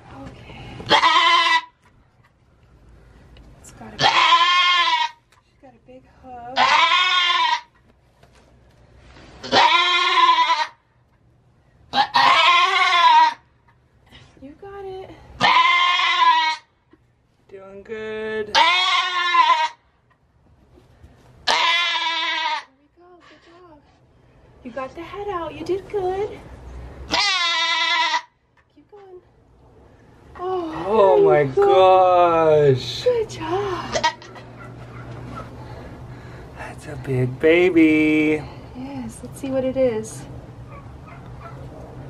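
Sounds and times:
goat bleating loudly: 0.9 - 1.8, 4.0 - 5.2, 6.6 - 7.8, 9.4 - 10.8, 11.9 - 13.5, 15.4 - 16.7, 18.5 - 19.8, 21.4 - 22.7, 27.1 - 28.4, 33.8 - 34.4.

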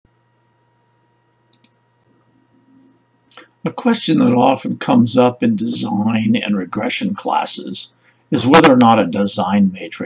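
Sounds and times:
steady electrical hum: 0.1 - 10.0
sharp clicks: 1.5 - 1.8.

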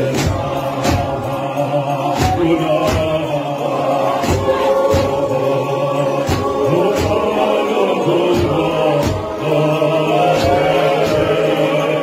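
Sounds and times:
sharp percussive hits: 0.0 - 12.0
voices singing a hymn in harmony: 0.0 - 12.0.

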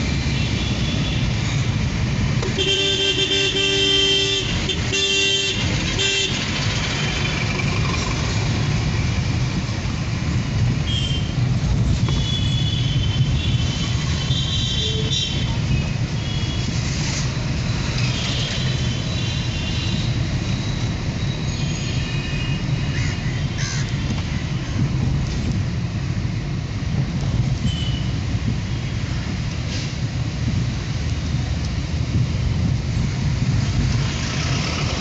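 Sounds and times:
car engine and tyres rumbling: 0.0 - 35.0.

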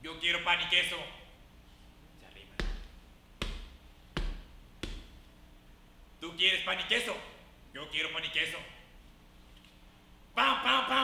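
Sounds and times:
deep thumps of blows: 2.6 - 5.2.

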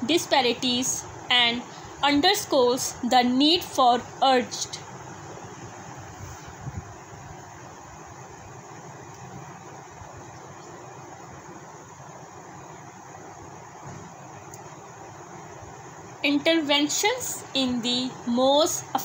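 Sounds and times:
room noise hiss: 0.0 - 19.0.

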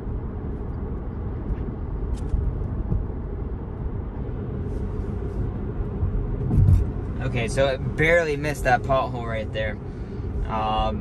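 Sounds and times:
road and tyre noise in car: 0.0 - 11.0.

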